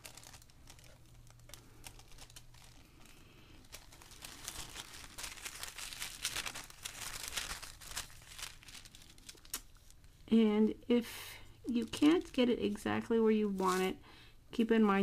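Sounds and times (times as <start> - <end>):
tissue paper crinkling: 0.0 - 10.2, 11.7 - 14.0.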